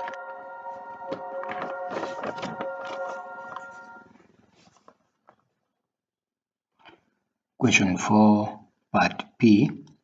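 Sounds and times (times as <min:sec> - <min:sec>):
music: 0:00.0 - 0:04.6.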